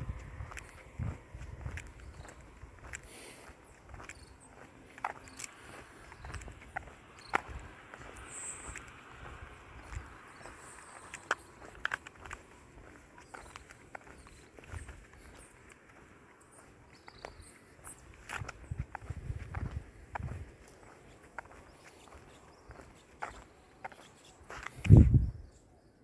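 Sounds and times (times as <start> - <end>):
footsteps on asphalt: 0.0 - 25.3.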